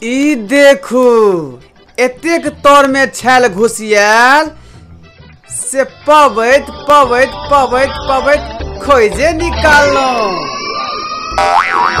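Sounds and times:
falling pitch glide: 9.3s - 12.0s
boing-like tone: 10.5s - 12.0s.

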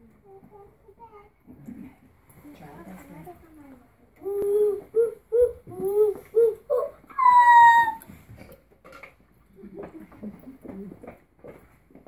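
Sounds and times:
soft murmured speech: 0.0s - 6.6s.

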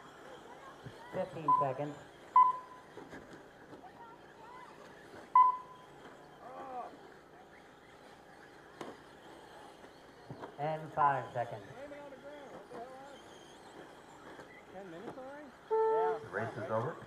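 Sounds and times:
faint distant voices: 0.0s - 17.0s
loud electronic beep: 2.4s - 2.8s, 5.4s - 5.8s.

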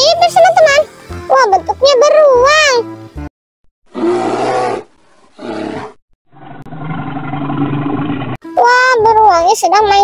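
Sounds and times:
bear growling: 3.9s - 8.4s.

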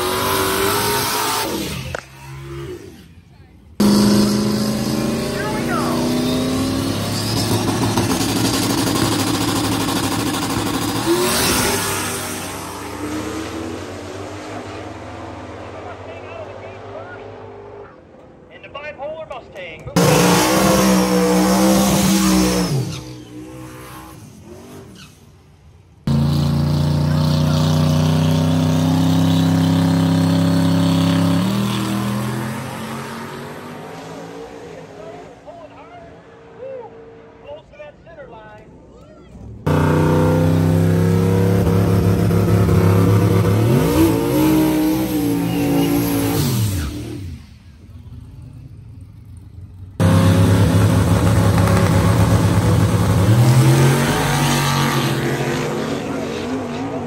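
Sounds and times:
race car engines revving high: 0.0s - 18.4s, 19.9s - 25.3s, 26.0s - 37.7s, 39.3s - 57.0s.

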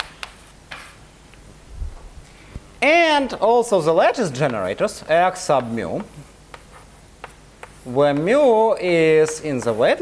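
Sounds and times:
chalk tapping and scratching: 0.0s - 1.0s, 4.1s - 10.0s.

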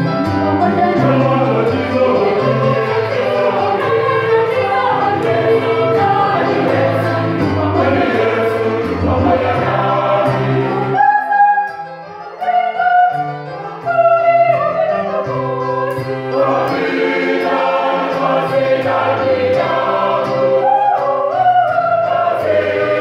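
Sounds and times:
choir singing in harmony: 0.1s - 23.0s.

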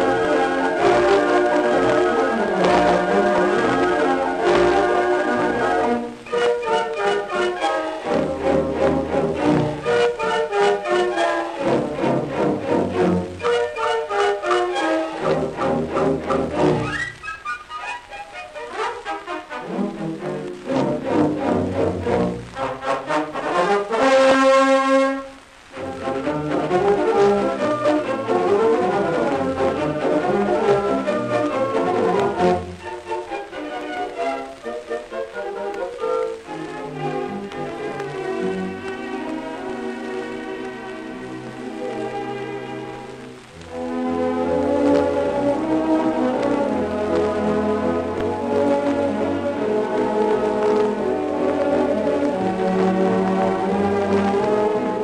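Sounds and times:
dance orchestra playing: 0.0s - 25.2s.

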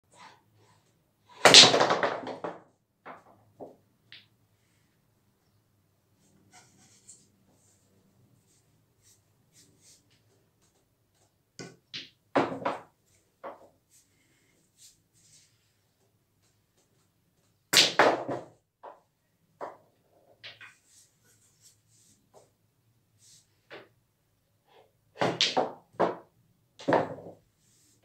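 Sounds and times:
pool balls clacking: 1.4s - 4.3s, 11.6s - 13.6s, 25.2s - 27.4s.

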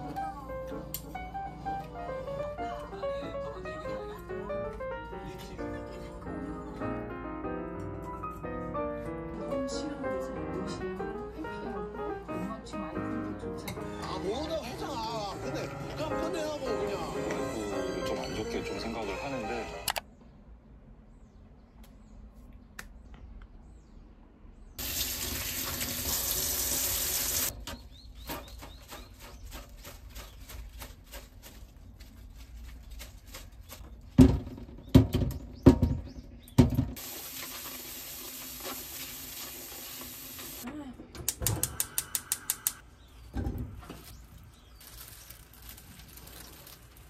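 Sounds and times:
rinsing clatters: 36.6s - 40.6s.

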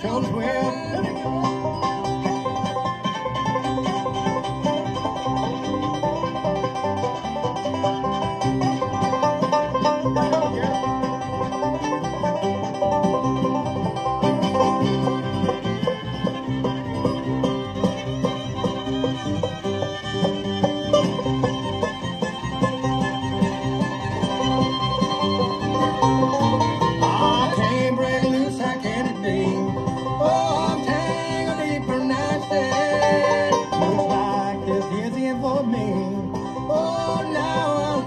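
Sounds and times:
bluegrass band playing: 0.0s - 38.0s
rolling banjo: 0.0s - 38.0s
lead line with sliding notes: 0.5s - 38.0s.

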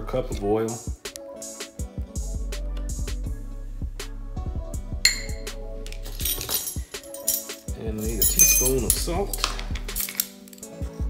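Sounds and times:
background music: 0.0s - 11.0s
glass clinks: 5.1s - 5.5s, 6.2s - 9.0s.

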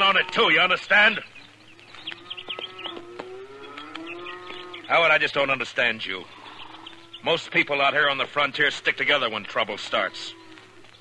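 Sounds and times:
cattle mooing: 0.0s - 0.8s, 1.7s - 5.1s, 6.2s - 7.3s, 8.7s - 10.9s.

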